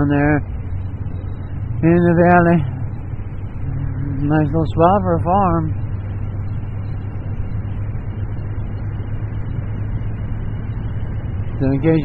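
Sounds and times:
motorcycle engine cruising: 0.0 - 12.0
road noise: 0.0 - 12.0.

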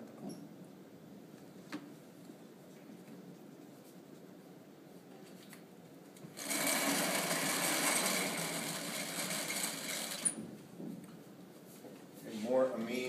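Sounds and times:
small motor whirring: 6.4 - 10.4.

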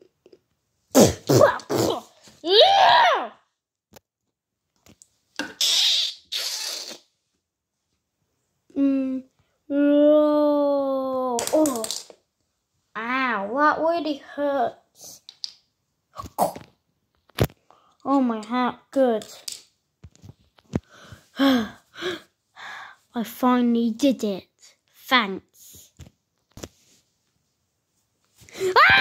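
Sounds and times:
child making vocal sound effects: 1.0 - 3.4, 8.7 - 12.0.

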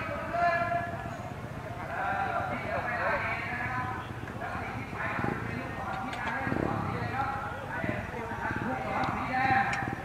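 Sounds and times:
crowd of voices talking: 0.0 - 10.0
dirt bike engines idling: 0.0 - 10.0.

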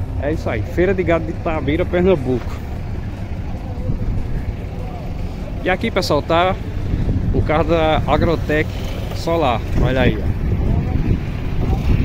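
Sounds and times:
steady low rumble: 0.0 - 8.6
faint distant voices: 0.2 - 12.0.

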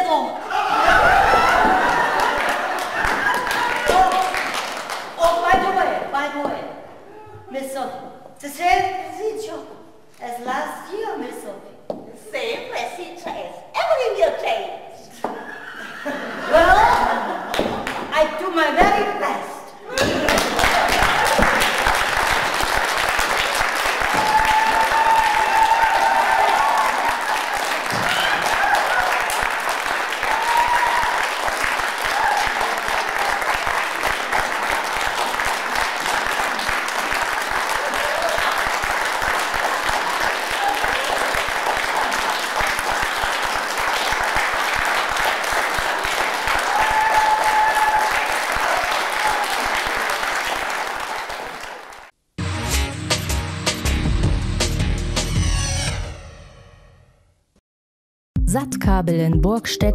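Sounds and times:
audience applauding: 0.8 - 5.2, 20.0 - 52.1.

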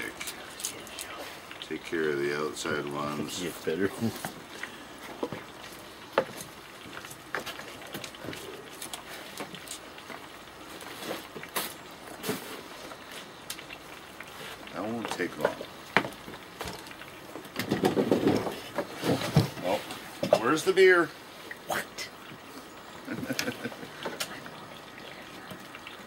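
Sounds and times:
voices: 0.0 - 4.8, 19.5 - 22.3.

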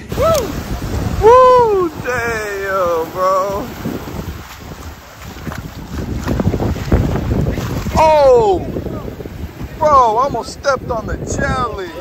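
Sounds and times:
small waves washing onto sand: 0.0 - 12.0
wind buffeting microphone: 0.0 - 12.0.

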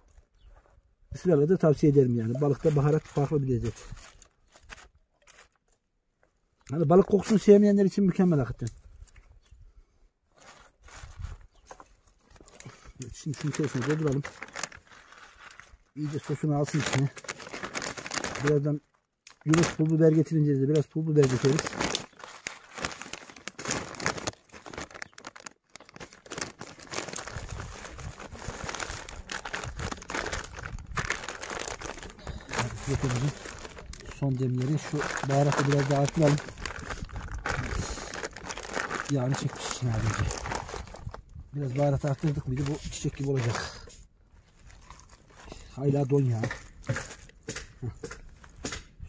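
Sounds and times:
soft rustles of plastic bag: 0.0 - 5.8, 10.3 - 47.2
plastic packaging crinkling: 2.0 - 5.7, 10.4 - 47.3.

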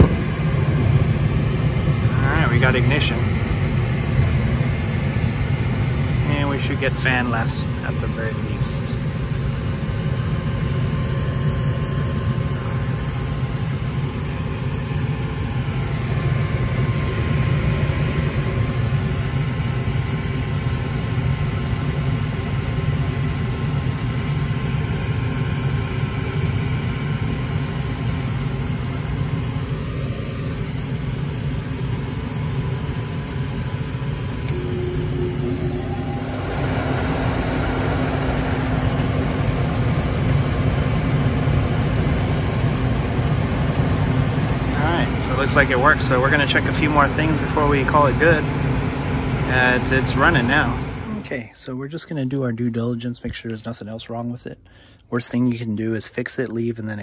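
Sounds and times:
gas burners rushing: 0.0 - 22.0, 28.6 - 51.4
steady whir: 0.0 - 22.4, 24.0 - 51.4
furnace motor humming: 0.0 - 51.5.

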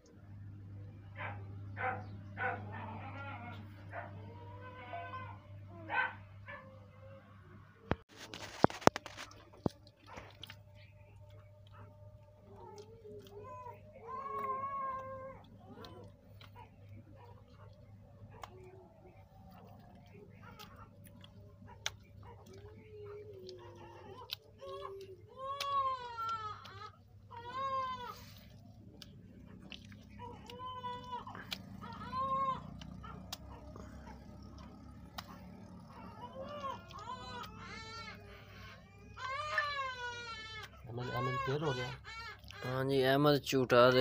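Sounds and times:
animal crying: 1.2 - 7.3, 8.4 - 42.9.

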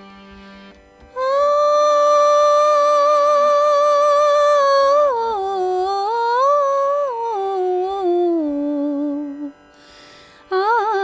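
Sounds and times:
woman singing wordless melody: 1.1 - 11.0
short breath: 9.7 - 10.5.

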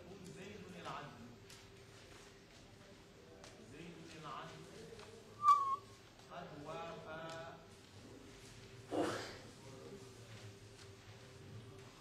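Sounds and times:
short high whistle tone: 5.4 - 5.9.

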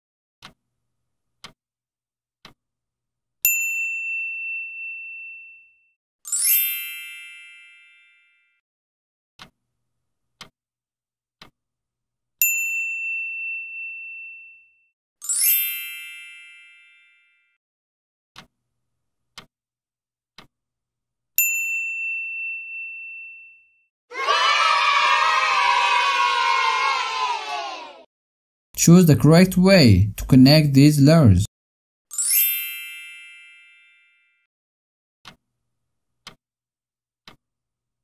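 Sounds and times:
bell ding: 21.4 - 23.6
children cheering: 24.1 - 28.1.

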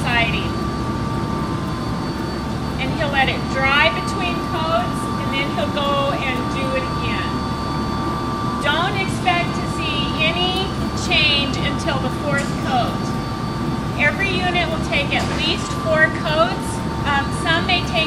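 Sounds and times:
faint steady whine: 0.0 - 18.0
low machine hum: 0.0 - 18.0
indistinct talking: 2.7 - 7.5, 8.6 - 13.2, 13.9 - 18.0.

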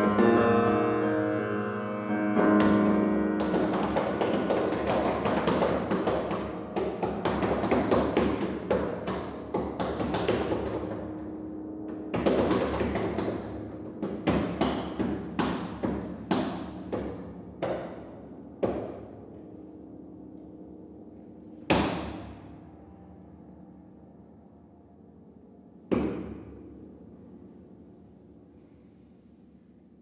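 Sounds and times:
piano strings struck percussively: 0.0 - 19.3, 21.6 - 22.7.

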